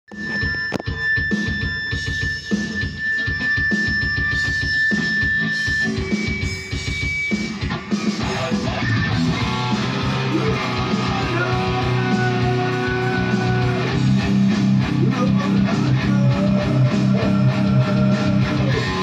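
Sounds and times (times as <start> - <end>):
electric guitar: 0.1 - 19.0
drum beat: 5.8 - 19.0.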